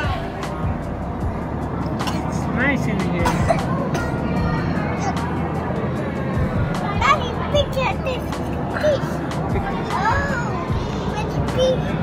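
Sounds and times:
background music: 0:00.0 - 0:12.0
indistinct chatter: 0:00.0 - 0:12.0
children's voices: 0:03.3 - 0:05.8, 0:06.5 - 0:12.0.

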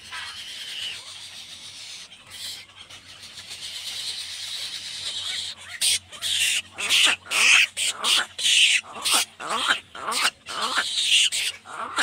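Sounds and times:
nestlings high-pitched chatter: 0:00.0 - 0:12.0.

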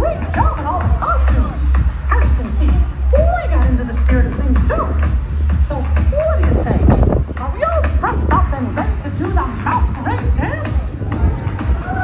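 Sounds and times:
dance music with heavy bass: 0:00.0 - 0:12.0.

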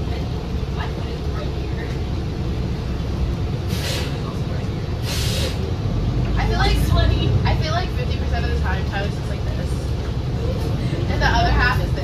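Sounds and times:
bus engine rumble: 0:00.0 - 0:12.0
compressed air hiss: 0:03.7 - 0:04.2, 0:05.0 - 0:05.6.

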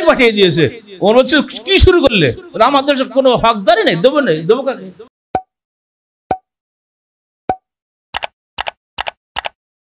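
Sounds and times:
quick double clicks: 0:08.2 - 0:09.6.

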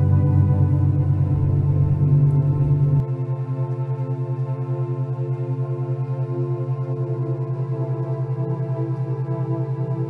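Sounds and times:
ambient drone tones: 0:00.0 - 0:03.2
low pulsing hum: 0:00.0 - 0:03.3.

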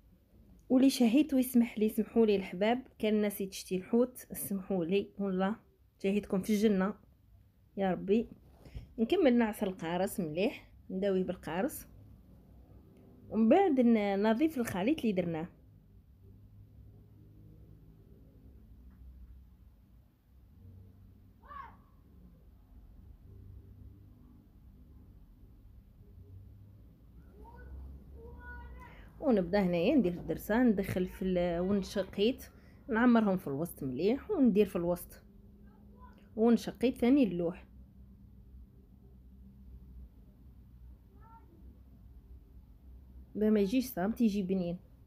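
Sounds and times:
faint low hum: 0:00.0 - 0:45.0.

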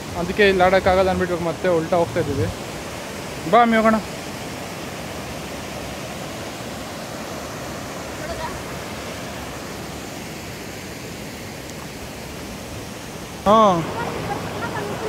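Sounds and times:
waterfall rushing over rocks: 0:00.0 - 0:15.0.

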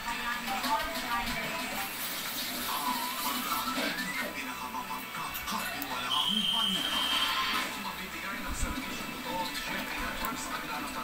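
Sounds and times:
television music: 0:00.0 - 0:11.0
television voices: 0:00.0 - 0:11.0.

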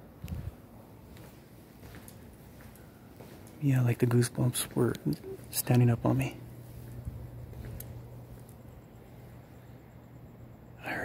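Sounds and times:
low hum: 0:00.0 - 0:11.0
man's voice: 0:03.6 - 0:06.4.

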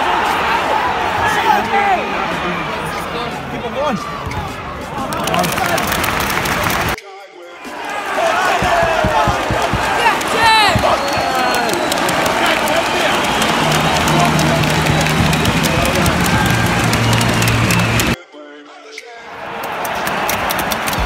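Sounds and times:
stadium crowd cheering and clapping: 0:00.0 - 0:07.0, 0:07.6 - 0:18.2, 0:19.2 - 0:21.0.

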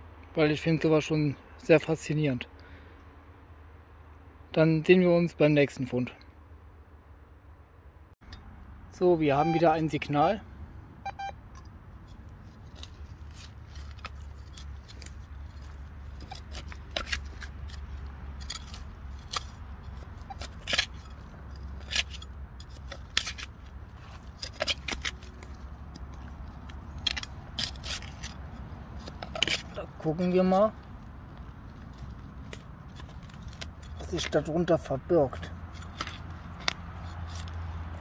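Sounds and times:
trowel scraping into soil: 0:12.0 - 0:38.0.

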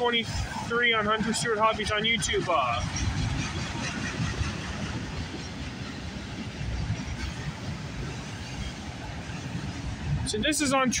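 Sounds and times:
freight train cars rolling: 0:00.0 - 0:11.0.

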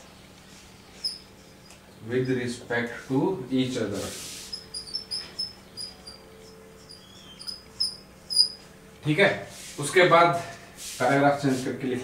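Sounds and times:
marker squeaking on a whiteboard: 0:00.9 - 0:02.4, 0:04.3 - 0:08.7.

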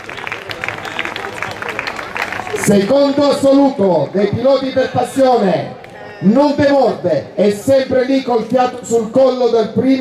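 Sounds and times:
crowd applause: 0:00.0 - 0:03.3.

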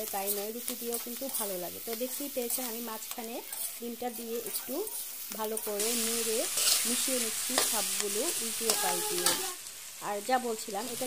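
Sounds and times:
food sizzling in a wok: 0:00.0 - 0:11.0
metal spatula scraping pan: 0:03.1 - 0:07.8.

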